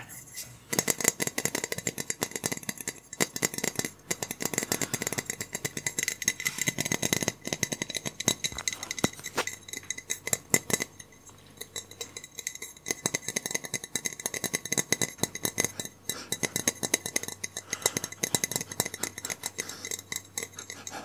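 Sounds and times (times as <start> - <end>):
hands tapping and clicking: 0.7 - 10.9, 11.6 - 21.0.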